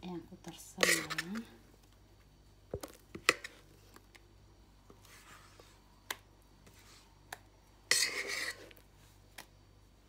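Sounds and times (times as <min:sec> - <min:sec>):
utensil scraping bowl: 0:00.8 - 0:01.6, 0:07.9 - 0:08.8.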